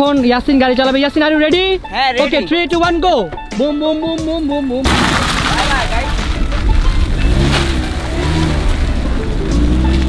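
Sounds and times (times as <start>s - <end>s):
car engine accelerating: 6.6s - 10.0s.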